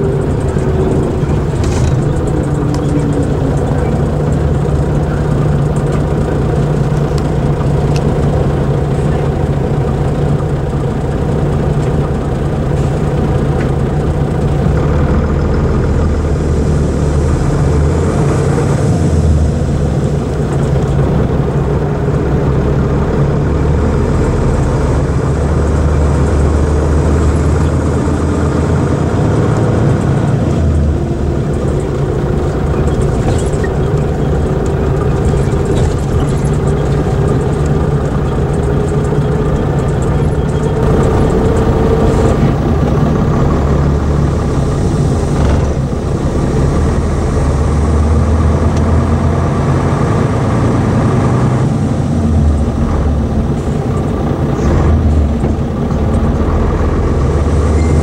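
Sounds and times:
rising engine tone: 0:00.0 - 0:10.4, 0:14.2 - 0:58.0
coach diesel engine hum: 0:00.0 - 0:58.0.

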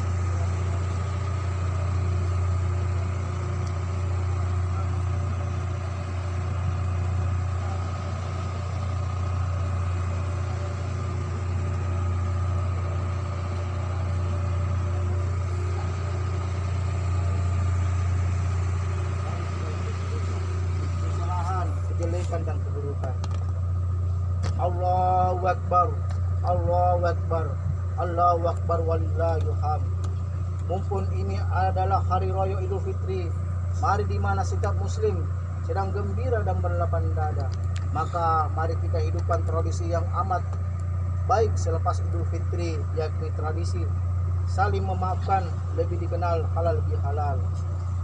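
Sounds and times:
faint hum tones: 0:00.0 - 0:48.0
ship machinery droning: 0:00.0 - 0:48.0.

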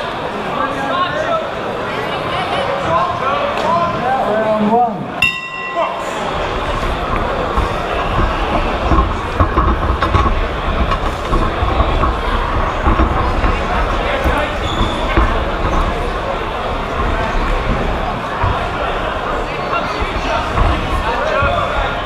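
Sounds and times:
boxing ring bell: 0:05.2 - 0:06.3.

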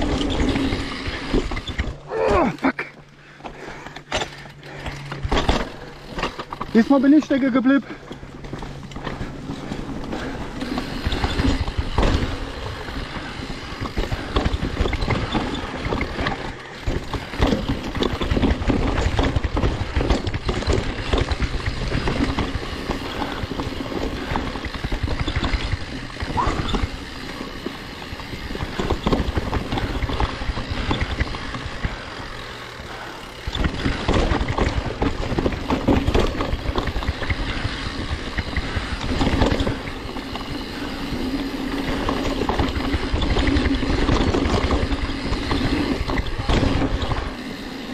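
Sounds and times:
bike rattling and knocking: 0:00.0 - 0:47.9
tyres rolling over dirt and leaves: 0:00.0 - 0:47.9.

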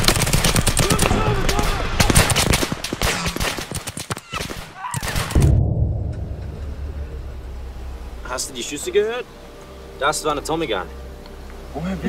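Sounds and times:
low rumble: 0:05.4 - 0:08.9
faint hiss: 0:06.2 - 0:12.0.

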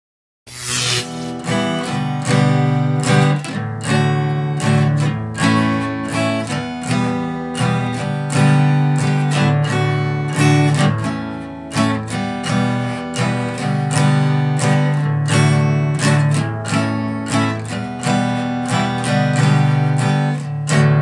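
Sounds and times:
acoustic guitar strumming chords: 0:00.6 - 0:21.0.

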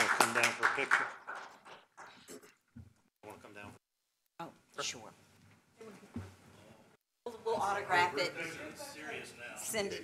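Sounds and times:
applause: 0:00.0 - 0:02.3.

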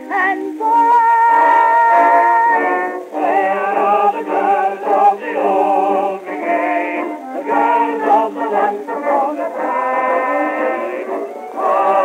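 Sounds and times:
old-time song on vintage recording: 0:00.0 - 0:12.0.

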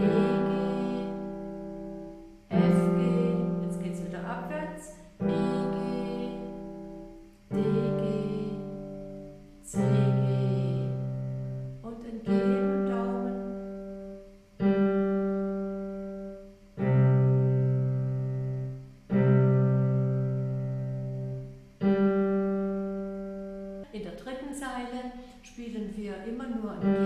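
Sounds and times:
digital piano chords: 0:00.0 - 0:24.1, 0:26.4 - 0:27.0.

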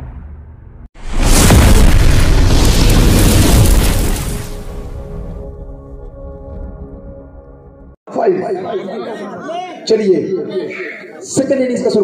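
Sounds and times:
explosion boom rumbling: 0:00.0 - 0:05.7.

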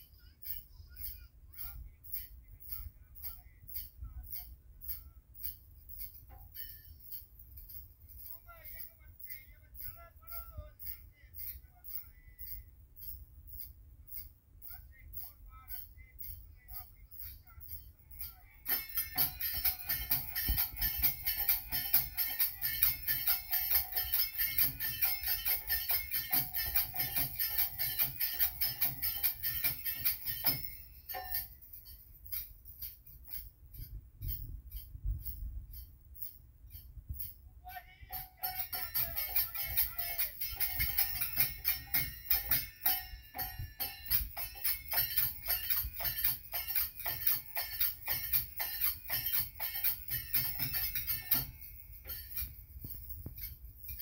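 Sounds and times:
brass hand cymbals clashing: 0:00.0 - 0:54.0
dholak drum: 0:18.7 - 0:31.4, 0:38.1 - 0:52.5.

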